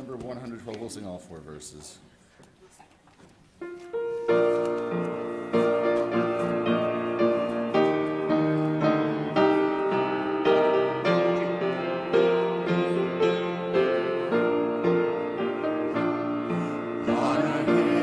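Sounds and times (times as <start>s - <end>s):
piano hymn chords: 3.6s - 18.0s.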